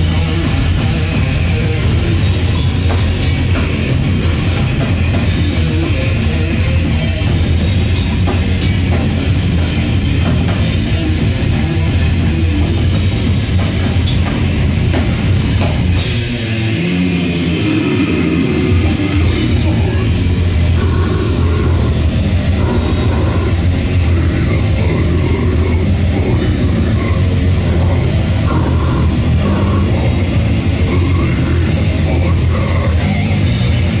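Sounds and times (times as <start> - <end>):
death metal band playing: 0.0 - 34.0.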